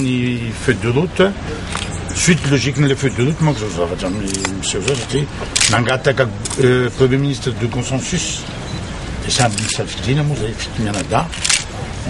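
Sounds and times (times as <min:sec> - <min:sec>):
man speaking: 0:00.0 - 0:08.6, 0:09.2 - 0:11.4.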